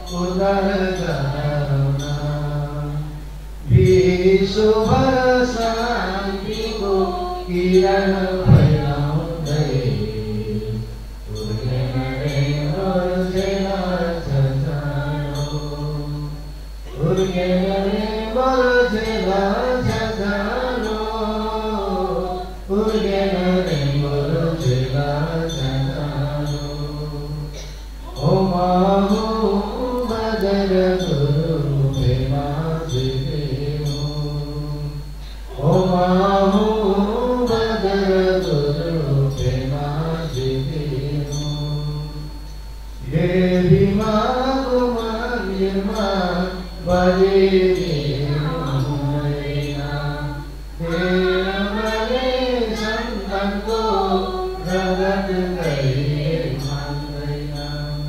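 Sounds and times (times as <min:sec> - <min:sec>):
mantra chanting: 0:00.0 - 0:58.0.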